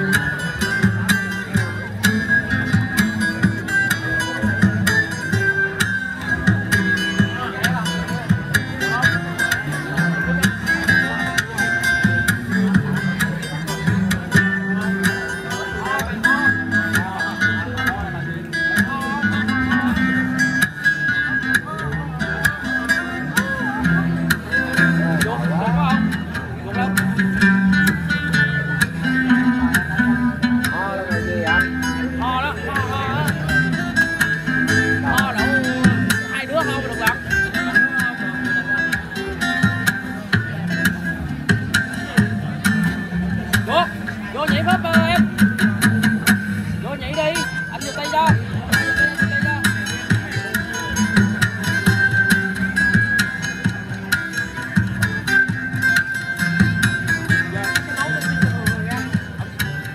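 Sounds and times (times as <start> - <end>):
amplified acoustic guitar playing: 0.0 - 59.9
voices: 0.0 - 59.9.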